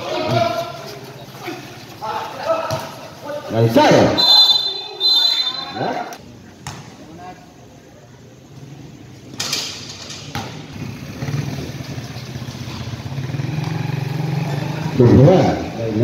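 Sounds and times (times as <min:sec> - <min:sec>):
basketball bouncing on concrete: 0:10.3 - 0:10.7
vehicle engine passing: 0:10.7 - 0:16.0.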